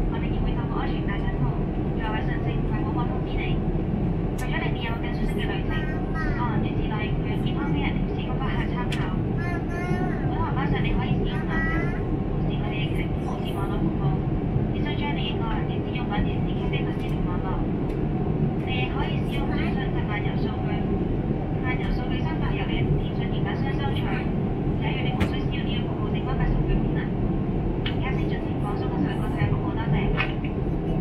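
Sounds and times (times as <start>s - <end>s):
airplane cabin roar: 0.0s - 31.0s.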